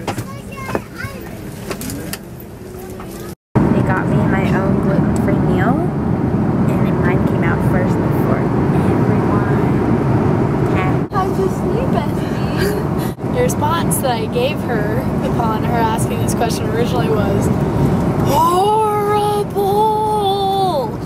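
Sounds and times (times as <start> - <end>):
faint passenger chatter: 0.0 - 5.9
engine and air rumble: 0.0 - 21.0.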